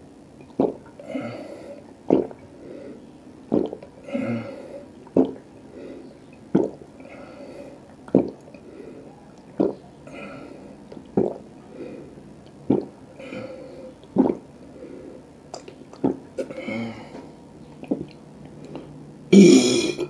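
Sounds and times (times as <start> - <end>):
soft throat and water sounds: 0.0 - 20.0
loud swallowing gulps: 0.3 - 2.6, 3.4 - 5.6, 6.2 - 7.1, 7.8 - 8.6, 9.4 - 11.6, 12.4 - 20.0.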